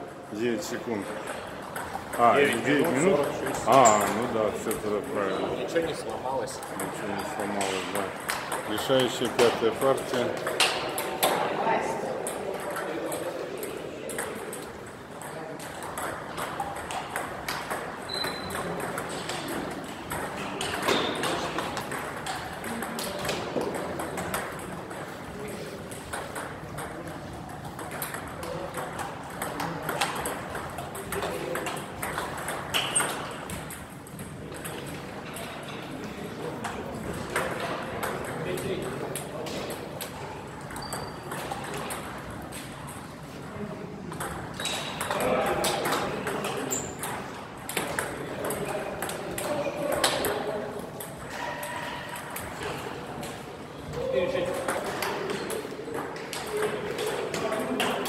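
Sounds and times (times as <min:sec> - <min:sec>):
table tennis ball clicking: 0:12.2 - 0:25.2, 0:25.9 - 0:35.8.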